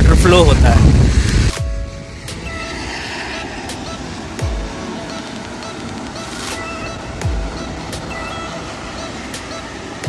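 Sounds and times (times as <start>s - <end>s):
mechanical hum: 0.8s - 10.0s.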